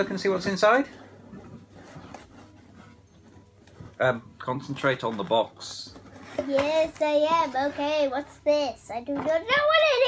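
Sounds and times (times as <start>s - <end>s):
cardboard box rustling: 0.4s - 7.6s.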